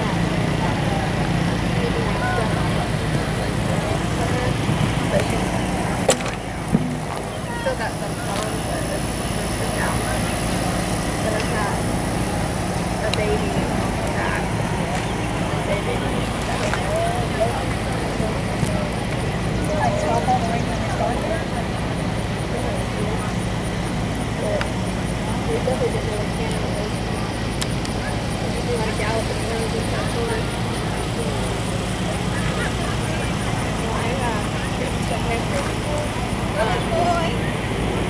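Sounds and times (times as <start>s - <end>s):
distant voices chattering: 0.0s - 38.0s
low outdoor hum: 0.0s - 38.0s.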